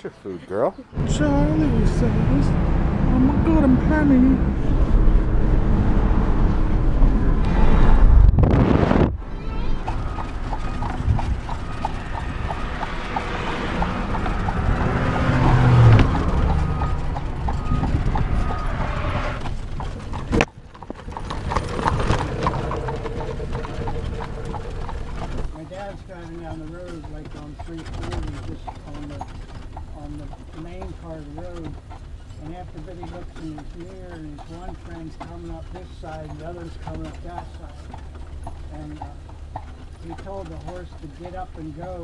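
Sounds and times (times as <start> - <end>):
car road noise rumble: 1.0 - 42.0
horse hooves clip-clopping on road: 9.4 - 42.0.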